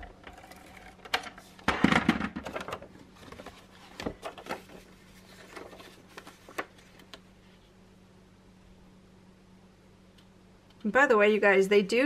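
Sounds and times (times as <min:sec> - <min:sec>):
paper handling clicks and knocks: 0:00.3 - 0:07.3.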